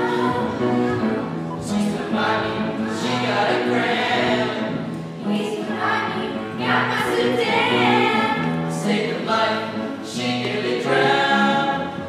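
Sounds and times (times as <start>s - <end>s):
girls choir singing: 0.0s - 12.0s.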